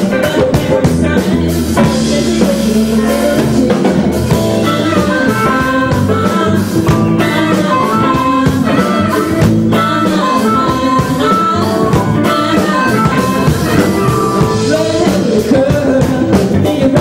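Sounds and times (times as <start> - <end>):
bass guitar: 0.0 - 17.0
drum kit: 0.0 - 17.0
electric guitar: 0.0 - 17.0
keyboards: 0.0 - 17.0
harmonica lead: 1.7 - 16.0.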